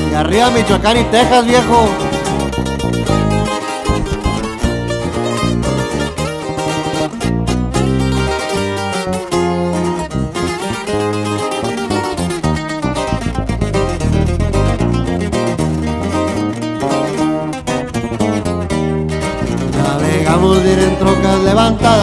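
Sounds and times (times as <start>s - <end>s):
acoustic guitars picking melody: 0.0s - 22.0s
low bass notes: 0.0s - 22.0s.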